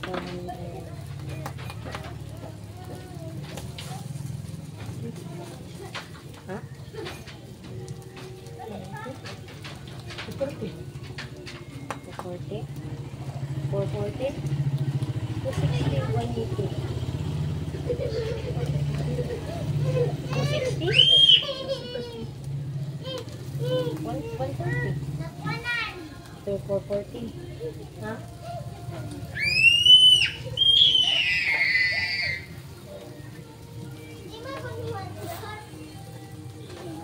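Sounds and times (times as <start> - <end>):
chatter of people and children: 0.0 - 37.0.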